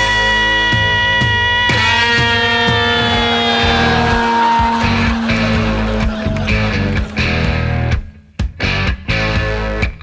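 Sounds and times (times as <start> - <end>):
distorted electric guitar: 0.0 - 10.0
drums: 0.0 - 10.0
loud rock music: 0.0 - 10.0.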